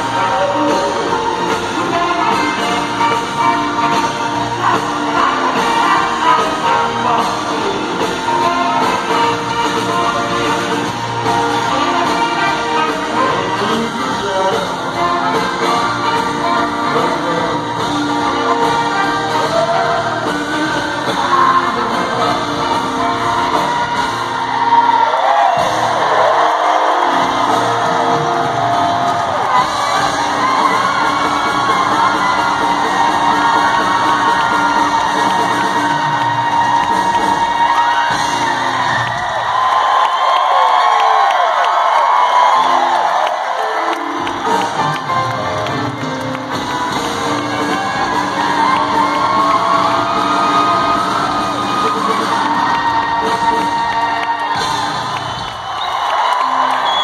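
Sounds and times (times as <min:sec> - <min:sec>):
crowd cheering and whooping: 0:00.0 - 0:57.0
live rock band playing: 0:00.0 - 0:57.0.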